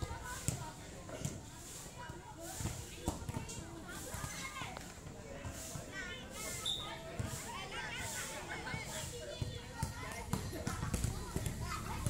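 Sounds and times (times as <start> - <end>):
young voices calling and chattering: 0.0 - 12.0.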